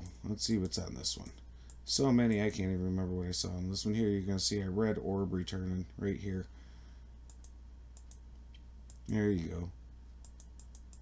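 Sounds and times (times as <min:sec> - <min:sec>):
low steady hum: 0:00.0 - 0:11.0
computer mouse clicks: 0:07.3 - 0:09.1, 0:10.2 - 0:11.0.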